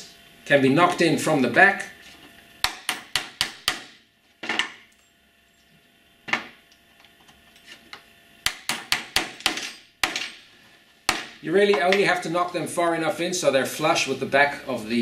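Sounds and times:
small hammer tapping pins: 8.4 - 10.4.

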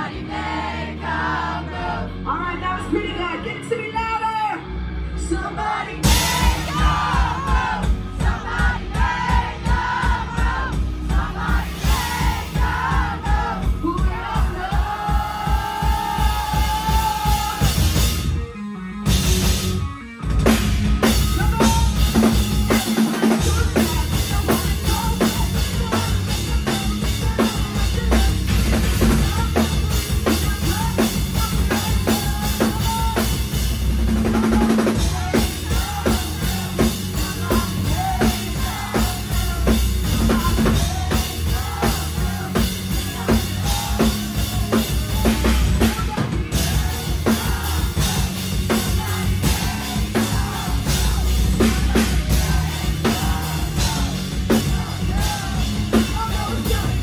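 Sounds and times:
rock band playing live: 0.0 - 57.0
drum kit beat: 6.0 - 57.0.

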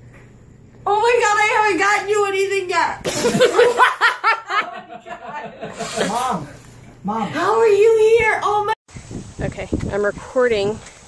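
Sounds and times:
human laughter: 3.1 - 6.5.

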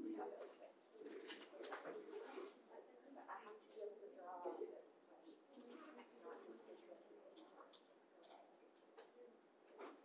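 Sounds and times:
faint distant talking: 0.0 - 10.0.

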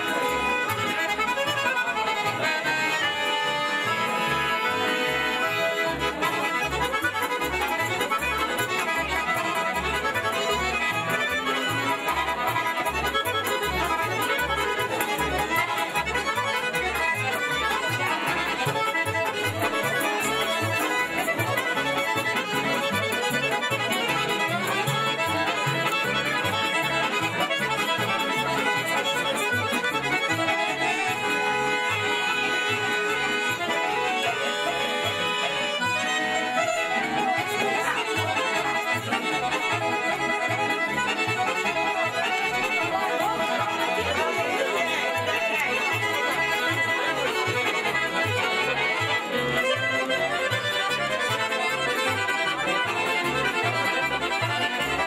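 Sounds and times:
accordion folk dance music: 0.0 - 55.0.

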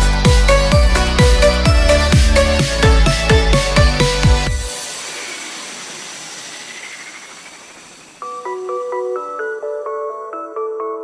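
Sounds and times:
white-noise sweep hiss: 3.6 - 9.4.

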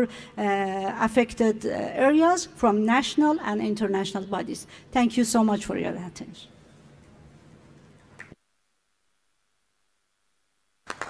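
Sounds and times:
room noise: 5.2 - 11.0.

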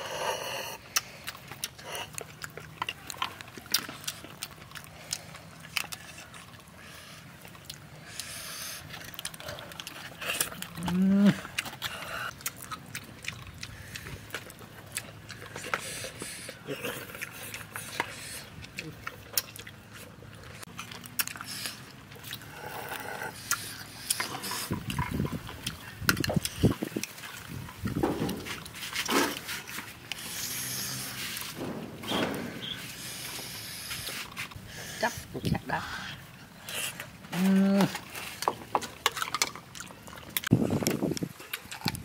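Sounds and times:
chewing: 0.0 - 42.0.

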